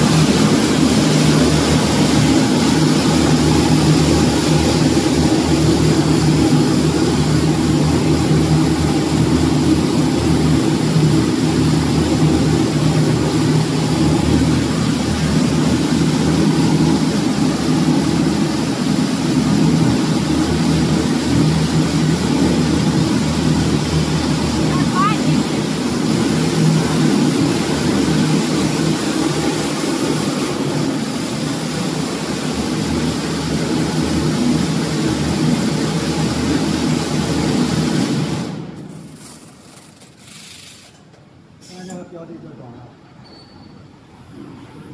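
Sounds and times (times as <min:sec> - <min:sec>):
machine humming and whirring: 0:00.0 - 0:44.9.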